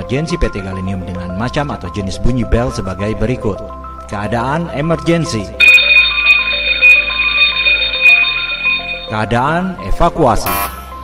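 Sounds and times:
alarm bell ringing: 0:05.6 - 0:09.2.

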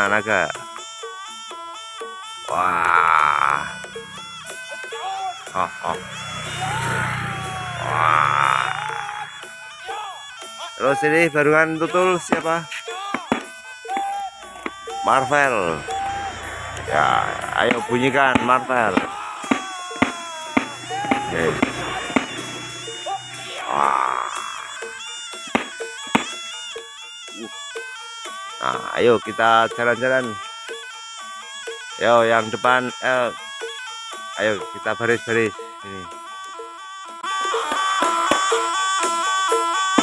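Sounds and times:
rough croaking growl: 0:02.5 - 0:04.6, 0:05.5 - 0:09.4, 0:15.4 - 0:19.2, 0:20.6 - 0:24.9
short falling cry: 0:02.5 - 0:09.4, 0:14.0 - 0:17.7, 0:19.0 - 0:24.9
simple melody of steady tones: 0:03.7 - 0:23.7, 0:24.8 - 0:28.6.

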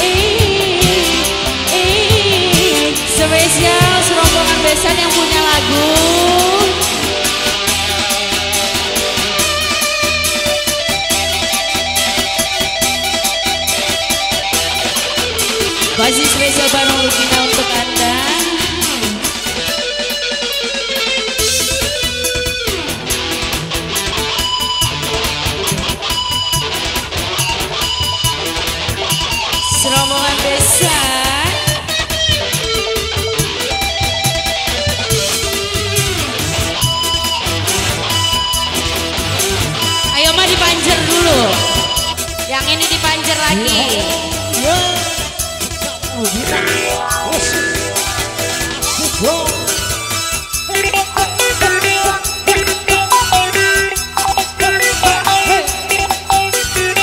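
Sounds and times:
bass: 0:00.0 - 0:57.0
electric guitar: 0:00.0 - 0:57.0
live band music: 0:00.0 - 0:57.0.

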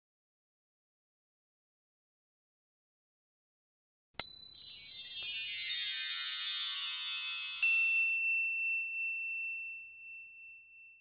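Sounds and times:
chime ringing: 0:04.2 - 0:11.0.

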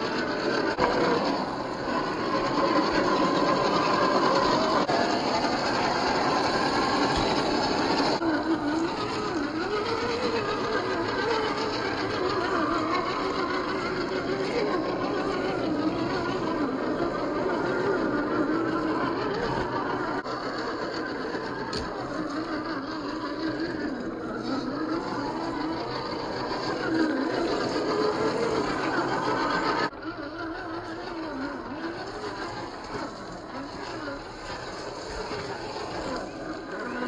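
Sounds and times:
toy car motor whining: 0:00.0 - 0:37.0.

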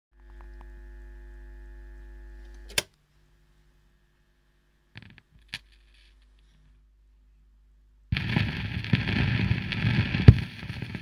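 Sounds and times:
record player electrical hum: 0:00.2 - 0:11.0.

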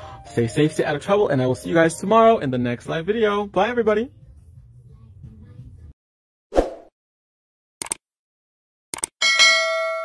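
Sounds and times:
bell ding ringing: 0:09.2 - 0:10.0.

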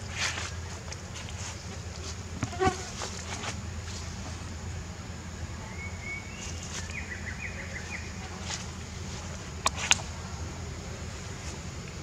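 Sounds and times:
flying insect buzzing: 0:00.0 - 0:04.5
low background noise: 0:00.0 - 0:12.0.

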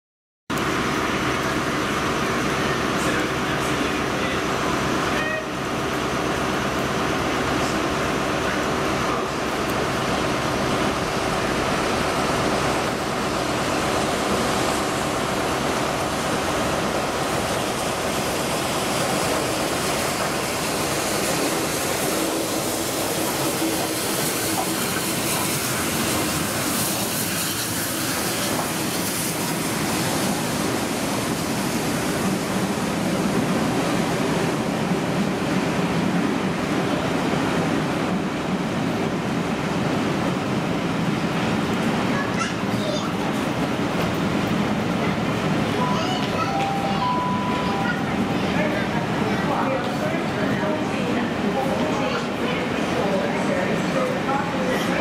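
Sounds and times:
train wheels rumbling on rail: 0:00.5 - 0:55.0
steam locomotive hiss: 0:17.3 - 0:32.4.

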